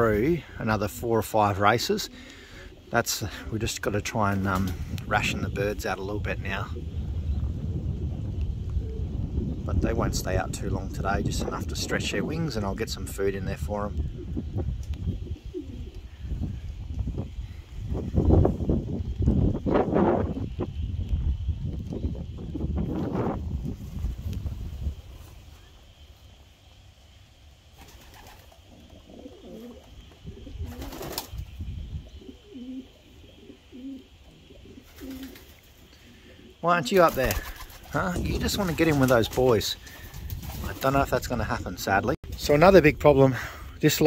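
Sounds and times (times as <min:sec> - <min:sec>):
pigeons cooing: 0:00.0 - 0:09.6, 0:13.9 - 0:19.0, 0:27.8 - 0:41.2
wind rumbling on microphone: 0:02.8 - 0:26.4, 0:29.0 - 0:34.9, 0:36.1 - 0:44.0.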